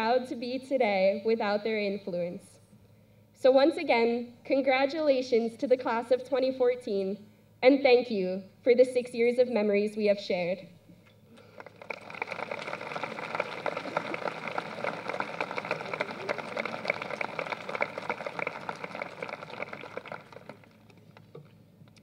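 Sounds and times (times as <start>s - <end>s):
crowd applauding: 11.4s - 21.4s.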